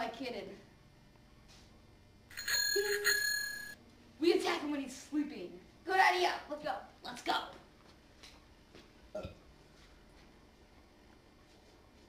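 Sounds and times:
small bell ringing: 2.3s - 3.8s.

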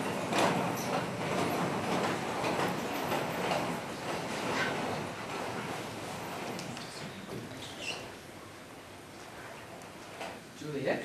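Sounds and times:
audience murmur and rustling: 3.7s - 10.1s.

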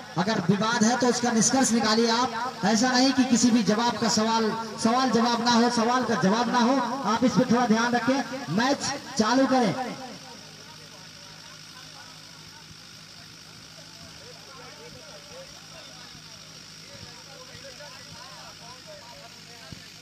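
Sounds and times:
distant men talking: 0.0s - 20.0s
steady low hum: 0.0s - 20.0s.

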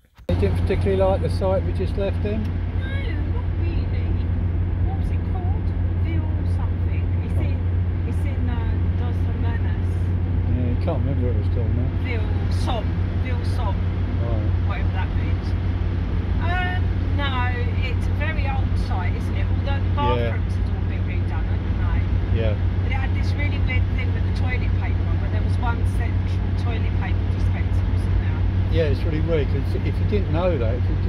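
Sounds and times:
engine drone and road noise: 0.0s - 31.0s.

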